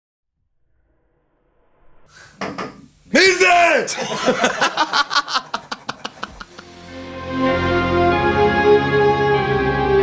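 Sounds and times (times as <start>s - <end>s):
faint low room noise: 2.1s - 8.1s.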